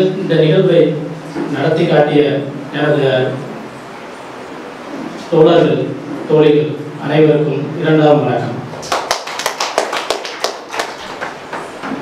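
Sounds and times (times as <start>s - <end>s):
scattered handclaps: 8.8s - 11.7s.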